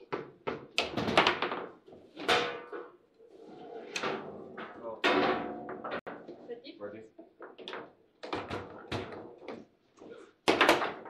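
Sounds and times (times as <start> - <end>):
table football clacks and thunks: 0.0 - 2.9, 7.2 - 11.0.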